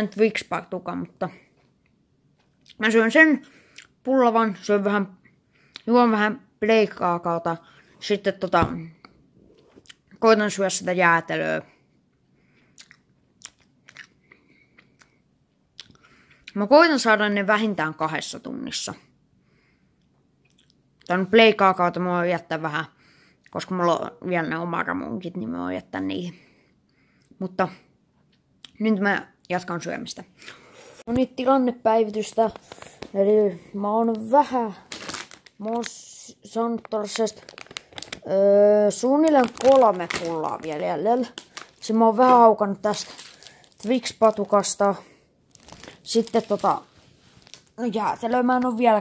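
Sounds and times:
faint chewing: 12.1 - 16.6, 20.0 - 21.1
wet mouth clicks: 12.8 - 14.2, 15.8 - 16.6, 20.4 - 20.8
food packaging crinkling: 32.2 - 33.2, 34.1 - 36.2, 36.8 - 44.9, 45.5 - 48.3.

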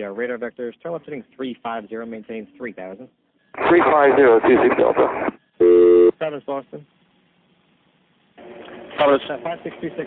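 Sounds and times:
radio channel static hiss: 3.5 - 5.4.

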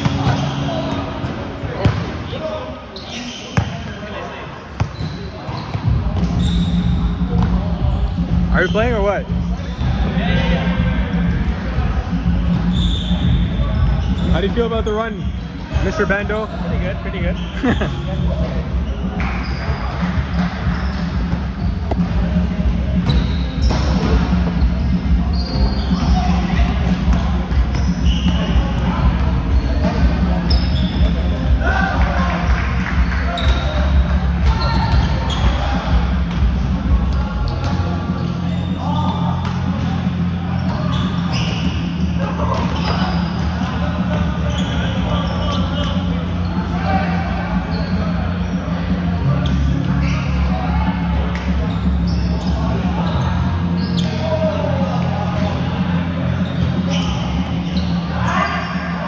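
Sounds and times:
sneakers squeaking on court: 0.0 - 10.0, 12.2 - 31.7, 32.4 - 46.8, 47.6 - 48.7, 49.3 - 50.7, 51.3 - 55.6, 56.2 - 58.9
scattered voices: 0.0 - 59.0
low background music: 5.9 - 59.0.

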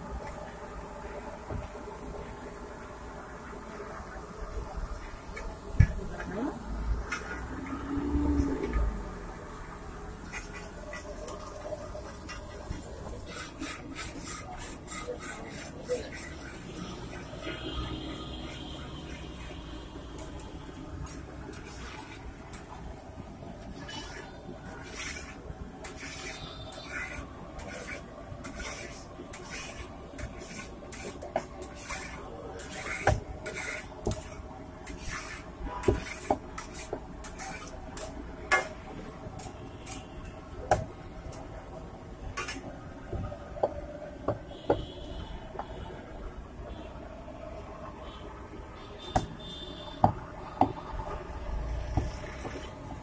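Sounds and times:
metal spatula scraping griddle: 13.2 - 18.5, 23.8 - 38.8.

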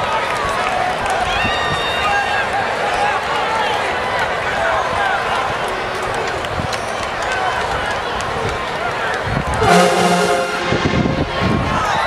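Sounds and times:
stadium crowd chatter: 0.0 - 12.0
brass section held chord: 9.6 - 12.0.

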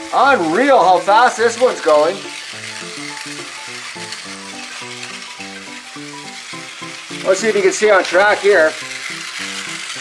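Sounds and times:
background music: 0.0 - 10.0
toy train motor whirring: 0.0 - 10.0.

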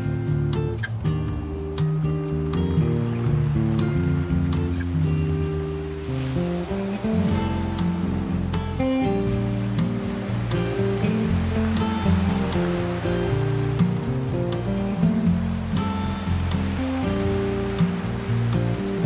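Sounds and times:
classical guitar music: 0.0 - 19.0
ocean waves on a beach: 0.0 - 19.0.

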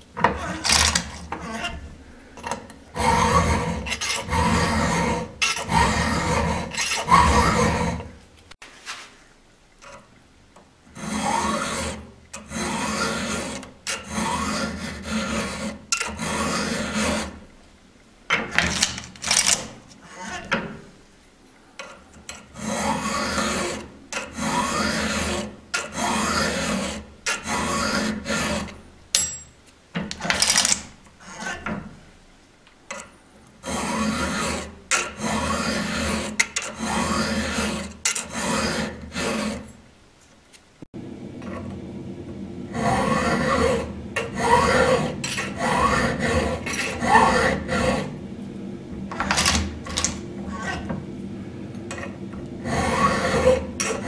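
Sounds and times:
file rasping on saw chain: 3.0 - 8.2, 11.0 - 17.4, 22.3 - 28.8, 33.6 - 39.7, 42.7 - 48.1, 52.6 - 54.0.

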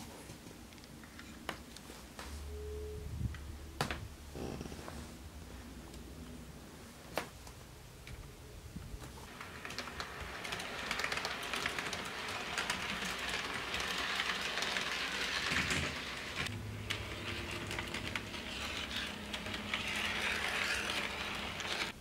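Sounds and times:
low hum: 2.3 - 6.9, 16.4 - 21.6
model train wheels rattling: 9.3 - 22.0.

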